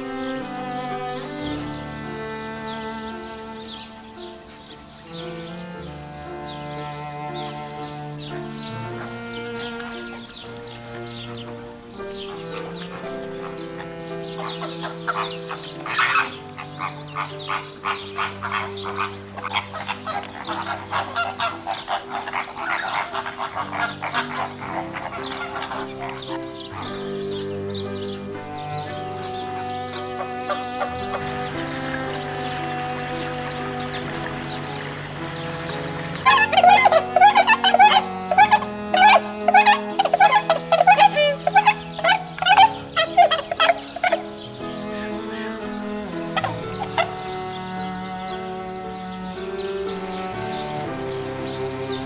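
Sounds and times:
background music with held notes: 0.0 - 52.0
flamingo flock honking: 0.0 - 52.0.

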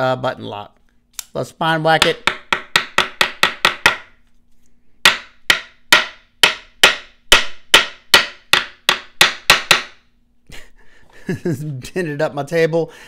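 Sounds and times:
knife spine knocking on wood: 2.0 - 4.1, 5.0 - 10.0.

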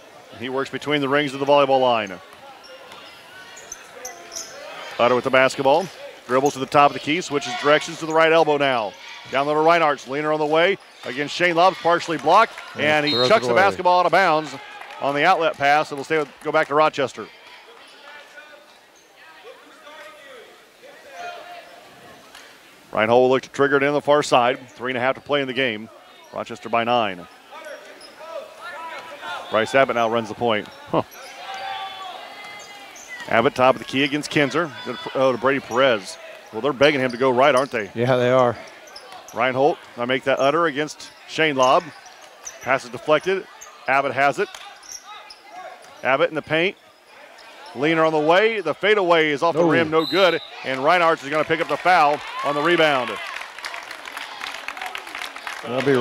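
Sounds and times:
faint voices: 0.0 - 14.7
players moving on hardwood court: 47.3 - 56.0.

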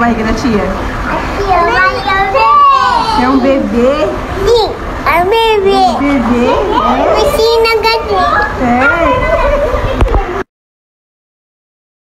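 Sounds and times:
young children talking: 1.0 - 10.5.

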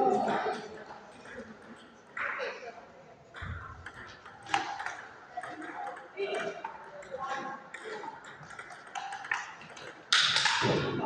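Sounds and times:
murmur of voices: 0.0 - 11.0
table tennis ball clicking: 3.4 - 10.8.

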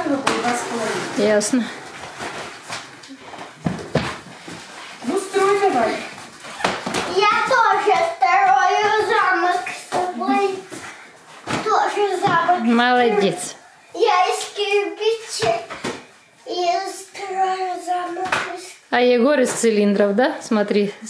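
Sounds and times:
young child making high sounds: 7.1 - 10.6, 16.4 - 18.8.

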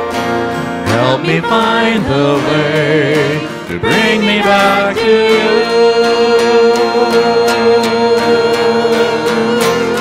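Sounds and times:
acoustic guitar: 0.0 - 10.0
voices singing: 0.9 - 10.0.

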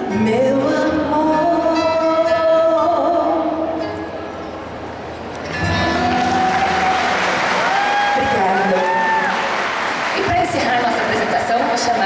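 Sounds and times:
audience applauding: 5.6 - 11.4.

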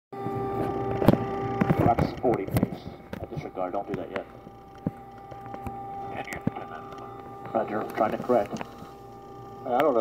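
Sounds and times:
cockpit hum of held tones: 0.2 - 10.0.

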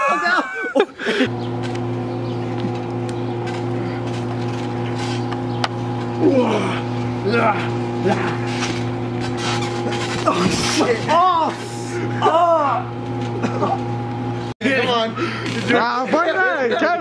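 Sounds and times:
steady droning hum: 0.0 - 17.0.

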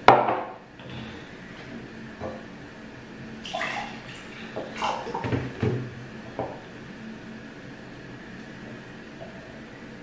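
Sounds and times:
water gurgling into a glass: 3.4 - 5.3.

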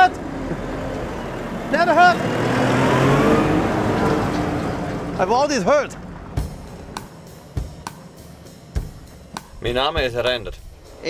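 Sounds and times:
tractor driving past: 0.0 - 9.2.

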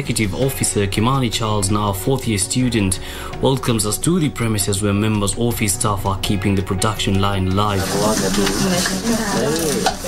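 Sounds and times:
paper rustling and scraping: 7.8 - 10.0.

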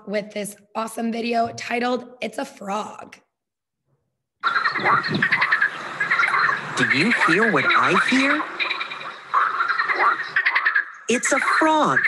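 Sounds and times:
frogs calling: 4.4 - 12.0.

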